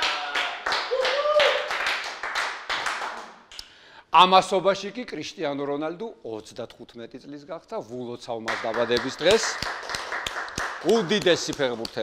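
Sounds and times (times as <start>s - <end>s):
hand clapping: 0.0s - 3.7s, 8.5s - 12.0s.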